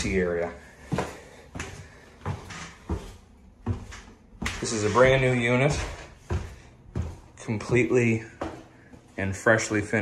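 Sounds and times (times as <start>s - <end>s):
footsteps going down stairs: 0.0s - 10.0s.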